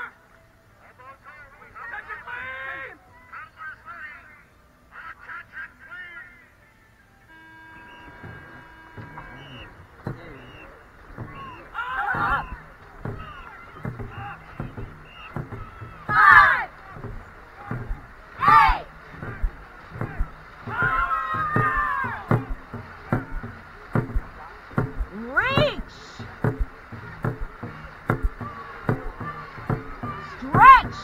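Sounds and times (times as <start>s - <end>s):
people shouting calls: 0.8s - 6.5s, 7.2s - 31.0s
rushing water: 7.1s - 31.0s
paddle stroke knocks: 7.3s - 31.0s.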